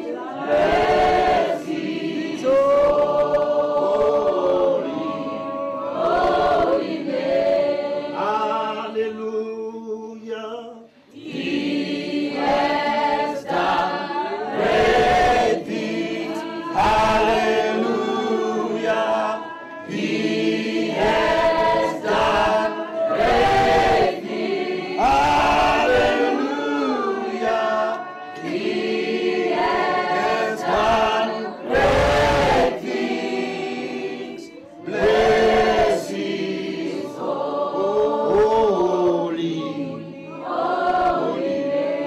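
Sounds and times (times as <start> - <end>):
choir singing gospel: 0.0 - 42.0.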